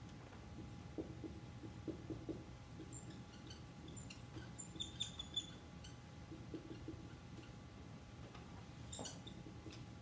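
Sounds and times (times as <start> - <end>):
marker squeaking on a whiteboard: 1.3 - 7.6, 8.9 - 9.9.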